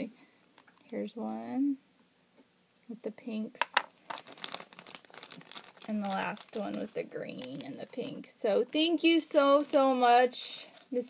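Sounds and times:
plastic bag crinkling: 3.8s - 8.4s.

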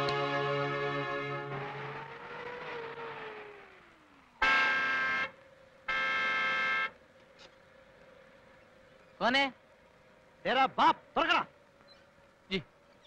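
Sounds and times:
car horn blasts: 0.0s - 1.7s, 4.4s - 7.0s
car engine slowing: 0.0s - 5.9s.

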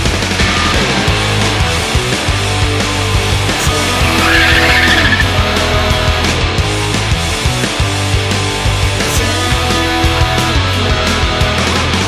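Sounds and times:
heavy rock music: 0.0s - 12.0s
car tyres squealing: 4.0s - 5.4s.

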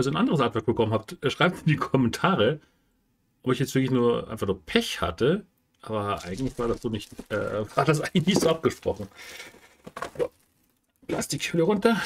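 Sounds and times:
person speaking: 5.8s - 10.3s
plastic shrink wrap rustling: 6.1s - 10.9s.

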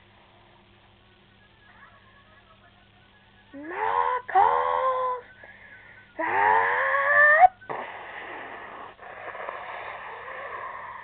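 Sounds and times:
steady rough hiss: 0.0s - 6.3s, 7.4s - 11.0s
person wailing: 3.6s - 5.3s, 6.2s - 7.6s.

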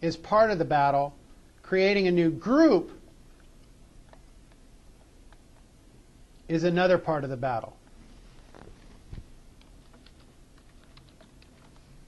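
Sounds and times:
computer keyboard typing: 9.6s - 12.0s.

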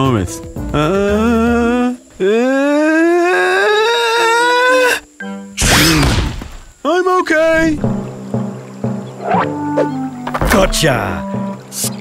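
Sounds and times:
background music: 0.0s - 6.2s, 7.5s - 12.0s.

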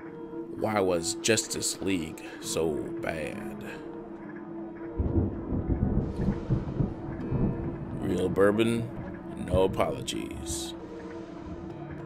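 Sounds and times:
deep uneven rumble: 5.0s - 11.8s.

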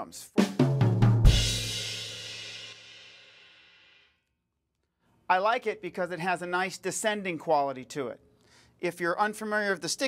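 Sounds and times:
drum fill on toms: 0.4s - 2.4s.

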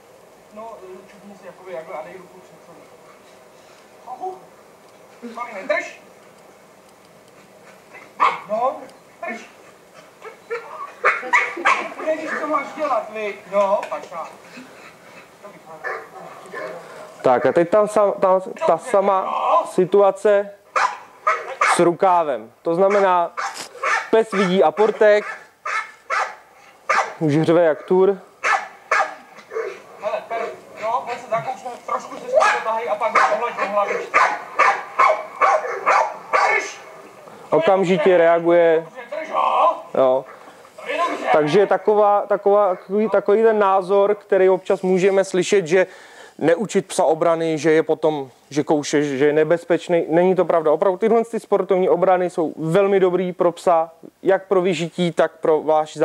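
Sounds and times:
dog barking over loudspeakers: 8.0s - 8.5s, 10.2s - 12.4s, 15.8s - 17.7s, 20.7s - 21.9s, 22.8s - 29.8s, 31.9s - 36.9s.

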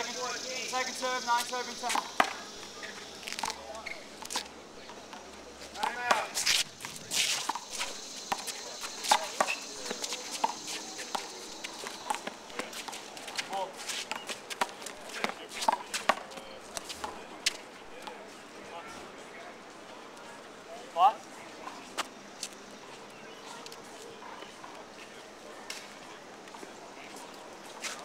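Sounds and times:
sneakers scuffing on court: 1.4s - 17.6s.

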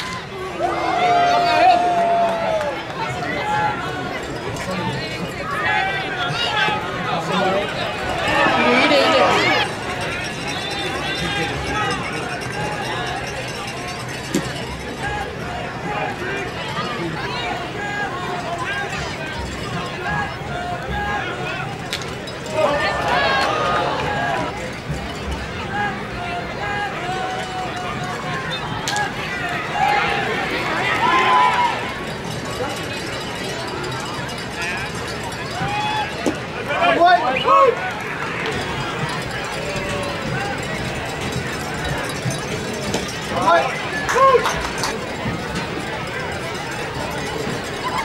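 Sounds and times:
crowd murmur: 0.0s - 48.0s
voices calling and shouting: 0.0s - 48.0s.

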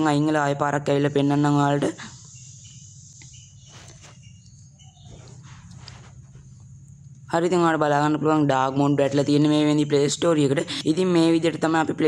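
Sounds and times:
faint distant sounds: 0.0s - 12.0s
low steady hum: 0.0s - 12.0s.

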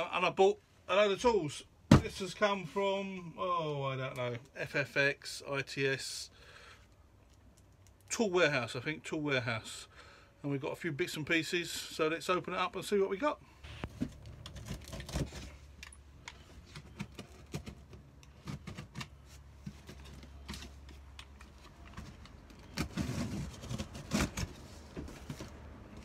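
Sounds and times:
cardboard rustling and scraping: 13.6s - 15.8s, 16.4s - 26.0s
knife slitting tape and cardboard: 14.4s - 15.7s, 22.6s - 24.8s.

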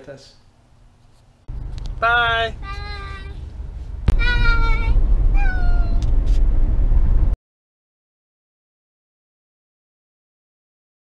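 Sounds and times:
car driving rumble: 1.5s - 7.4s
girl calling out: 2.5s - 3.4s, 4.2s - 6.0s.

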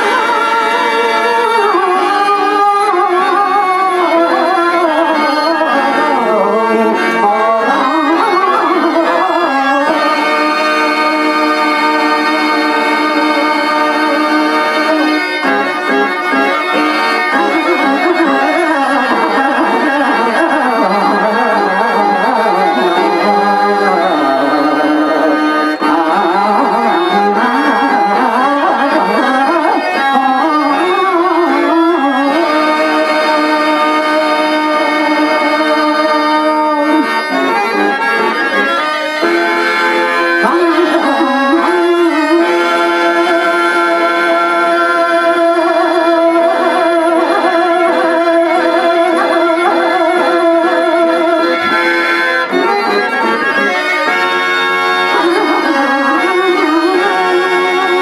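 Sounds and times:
harmonium melody: 0.0s - 58.0s
tabla drumming: 0.0s - 58.0s.

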